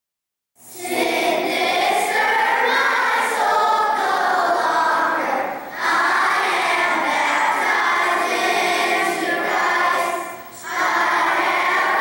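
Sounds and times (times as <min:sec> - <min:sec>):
children's choir singing: 0:00.6 - 0:12.0.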